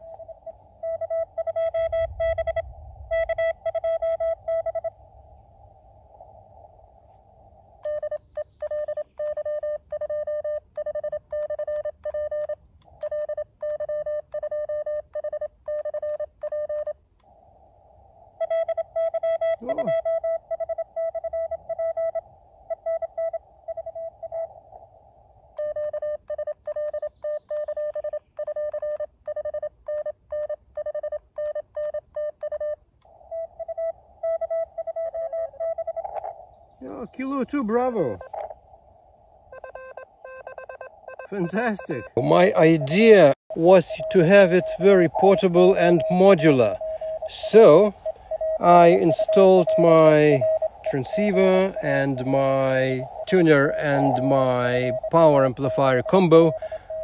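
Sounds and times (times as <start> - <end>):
morse code tone: 0.0 - 5.0, 7.8 - 17.0, 18.4 - 24.5, 25.6 - 36.3, 39.6 - 57.0
radio hiss: 41.3 - 57.0.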